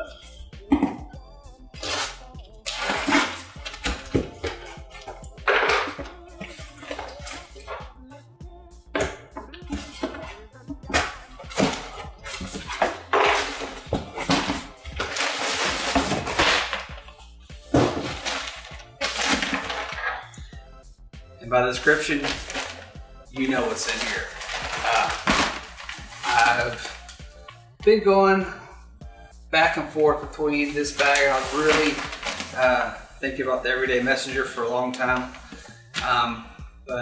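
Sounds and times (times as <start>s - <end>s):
background music: 0.0s - 37.0s
packing tape tearing: 1.8s - 6.0s, 10.9s - 17.0s, 17.8s - 20.3s, 22.0s - 27.6s, 30.8s - 32.7s
wrapped item rustling: 10.9s - 20.4s, 21.8s - 27.6s, 30.5s - 36.1s
cardboard flaps scraping: 17.8s - 20.2s, 23.4s - 27.0s, 30.7s - 32.8s.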